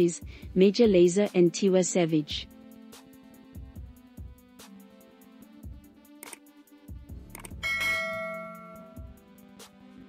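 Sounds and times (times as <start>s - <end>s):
background music with low beat: 0.0s - 10.0s
notification bell chime: 7.6s - 9.2s.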